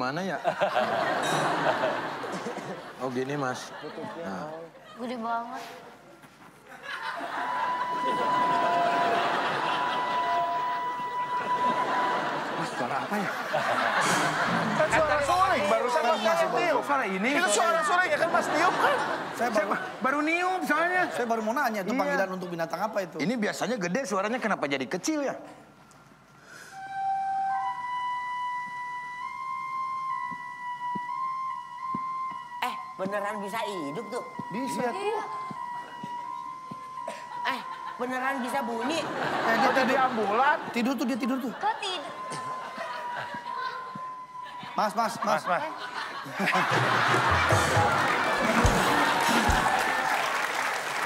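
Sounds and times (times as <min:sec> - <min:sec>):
audience chuckling: 0:00.4 - 0:05.1, 0:06.6 - 0:16.5, 0:45.5 - 0:50.2
bamboo flute whistling tone: 0:07.3 - 0:12.7, 0:26.5 - 0:39.3, 0:41.8 - 0:45.2.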